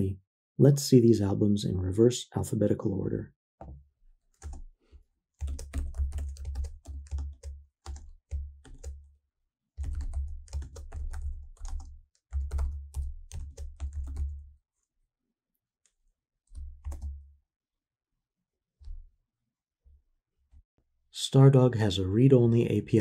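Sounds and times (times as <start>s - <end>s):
typing on computer keyboard: 4.3s - 4.7s, 5.4s - 9.1s, 9.8s - 14.4s, 16.5s - 17.2s.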